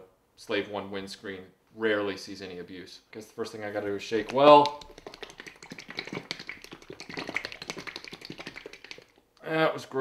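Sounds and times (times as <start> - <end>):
liquid sloshing in shaken bottle: 4.2 - 9.2.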